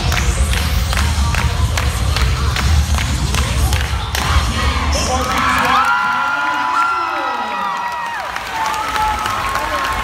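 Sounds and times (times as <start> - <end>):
backing music: 0.0 - 5.7
spectators cheering and screaming: 4.9 - 10.0.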